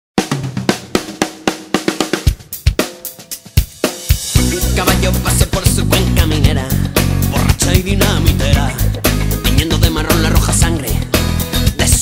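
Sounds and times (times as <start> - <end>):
drum kit beat: 0.2 - 12.0.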